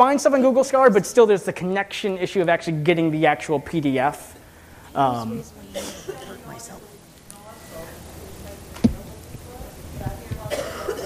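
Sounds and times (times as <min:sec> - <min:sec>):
faint talk: 0:04.9 - 0:11.0
person coughing: 0:05.8 - 0:06.4, 0:10.5 - 0:11.0.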